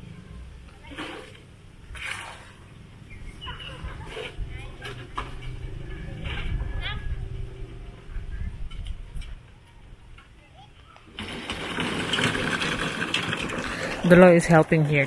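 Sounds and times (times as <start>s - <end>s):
workers talking: 3.1s - 15.0s.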